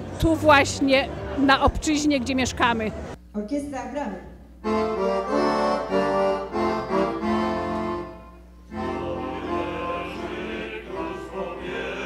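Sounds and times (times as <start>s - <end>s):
accordion playing held chords: 4.6s - 12.0s
fuller musical passage: 4.6s - 12.0s.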